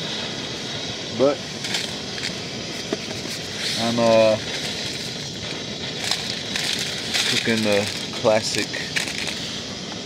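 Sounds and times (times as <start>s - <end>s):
stove burner hissing: 0.0s - 10.0s.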